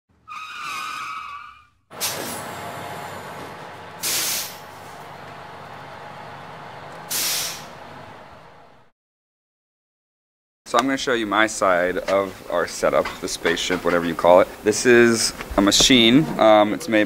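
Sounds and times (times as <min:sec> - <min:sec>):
air-brake hisses: 0:01.9 - 0:05.1, 0:07.0 - 0:07.9
bus engine and air noise: 0:01.9 - 0:08.9.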